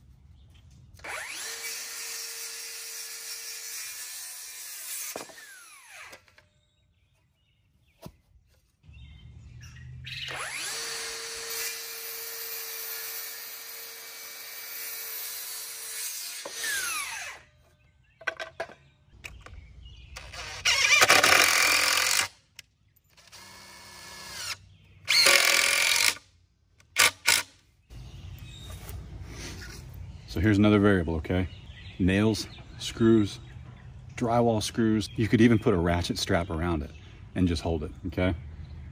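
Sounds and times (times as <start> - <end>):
circular saw cutting wood: 1.0 - 6.4, 10.2 - 17.5, 23.2 - 26.2
impact driver driving screws: 20.2 - 22.4, 23.2 - 26.2, 26.8 - 27.5.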